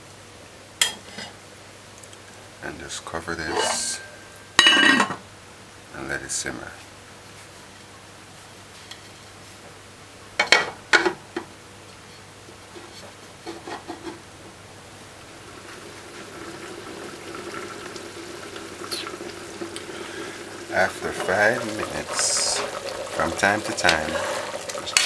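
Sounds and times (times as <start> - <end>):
stew simmering in a covered pot: 3.0 - 5.2, 10.4 - 25.0.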